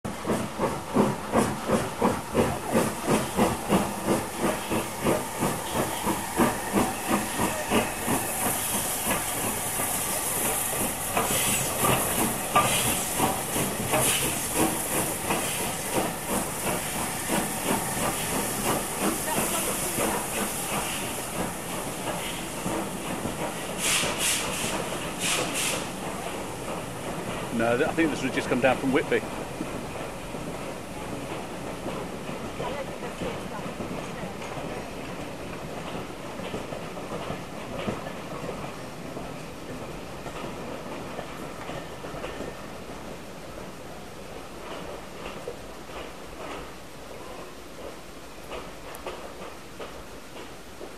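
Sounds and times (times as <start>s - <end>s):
steam hiss: 0.1s - 41.5s
steam locomotive chuffing: 0.1s - 50.5s.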